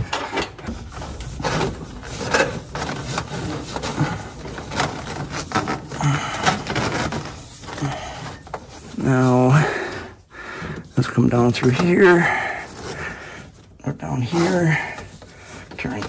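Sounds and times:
plastic wire loom crinkling and scraping: 0.0s - 16.0s.

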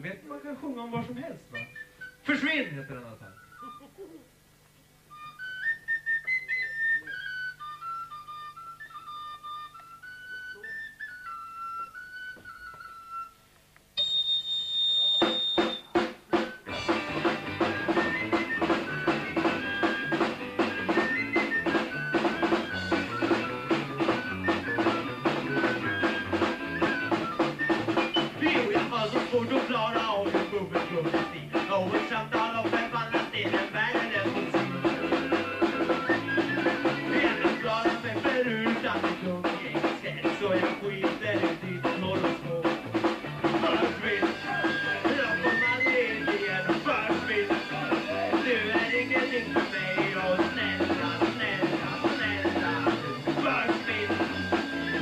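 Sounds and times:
live rock band playing: 15.0s - 55.0s.

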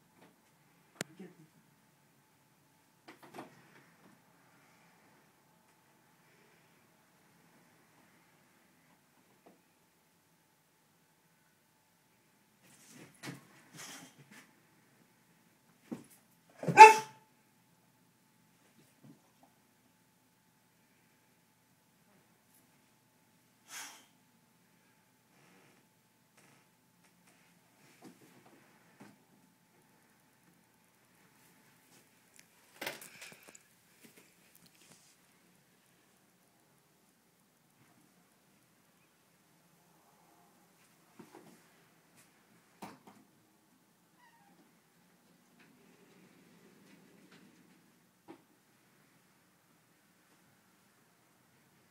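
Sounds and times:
dog barking: 16.6s - 17.2s.

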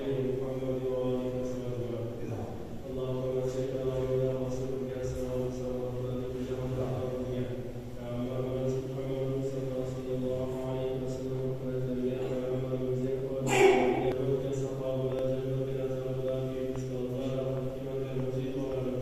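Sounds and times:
slow droning vocal chant: 0.0s - 19.0s.

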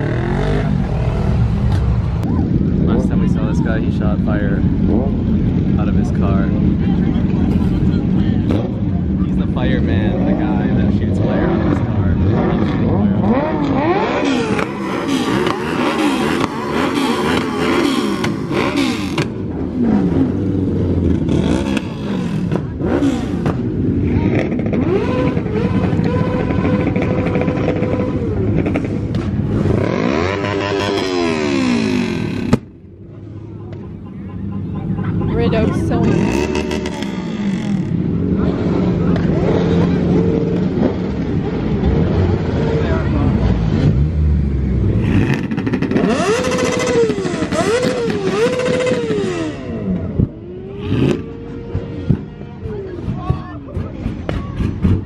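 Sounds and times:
car and motorcycle engines revving: 0.0s - 55.0s
crowd voices: 0.0s - 55.0s.

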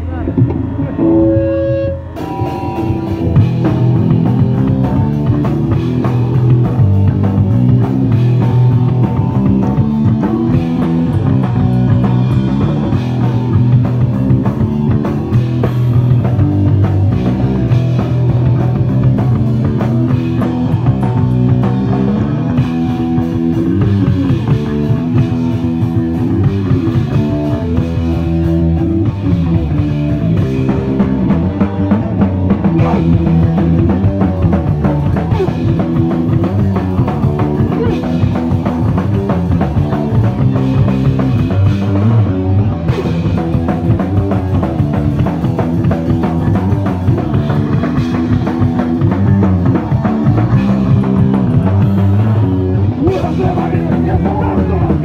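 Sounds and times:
live punk rock band playing: 0.0s - 55.0s.

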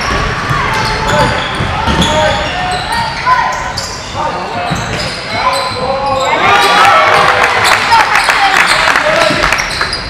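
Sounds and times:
sneakers squeaking on wooden court: 0.0s - 6.8s, 8.6s - 10.0s
players shouting in echoing hall: 0.0s - 10.0s.

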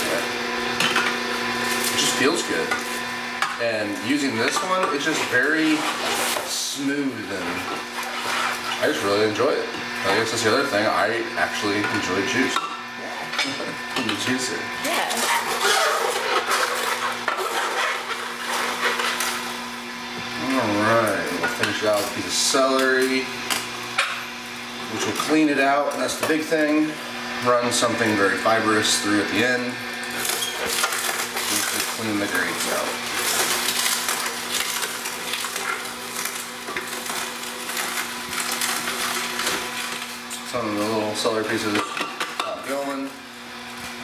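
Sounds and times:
vegetables crunching and crackling: 0.0s - 12.6s, 13.4s - 26.9s, 29.4s - 44.0s
juicer motor hum: 0.0s - 44.0s.

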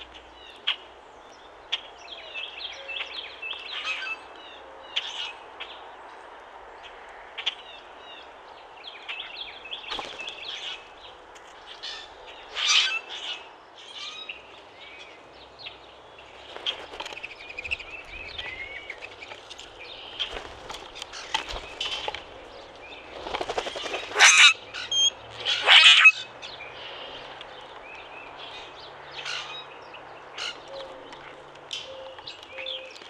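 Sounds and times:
birds chirping and twittering: 0.0s - 33.0s
grackles harsh squeaky calls: 24.1s - 26.3s.

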